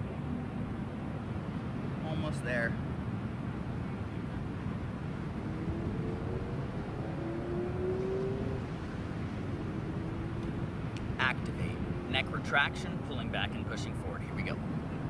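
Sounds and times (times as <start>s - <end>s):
faint engine-like hum: 0.0s - 15.0s
low outdoor rumble: 0.0s - 15.0s.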